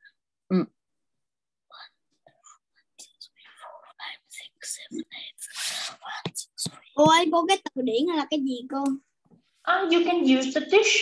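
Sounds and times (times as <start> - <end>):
person whispering: 1.7 - 7.1.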